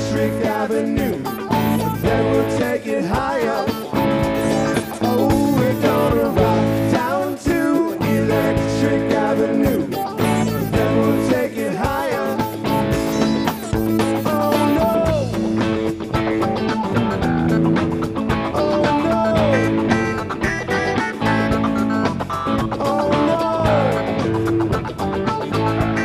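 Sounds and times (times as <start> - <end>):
electric guitar lead bending: 0.0 - 26.0
rock band playing live: 0.0 - 26.0.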